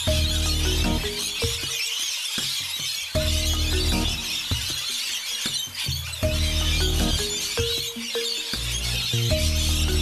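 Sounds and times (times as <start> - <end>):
instrumental music: 0.0 - 10.0.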